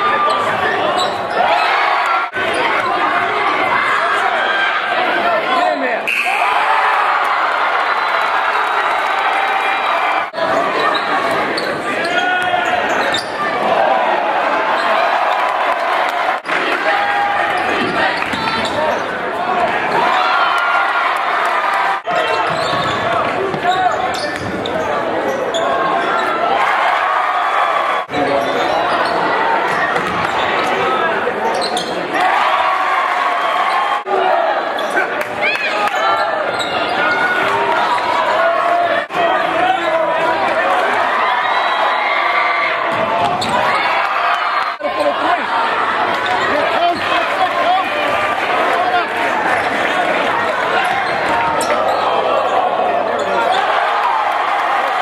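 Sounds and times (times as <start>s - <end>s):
crowd voices: 0.0s - 55.0s.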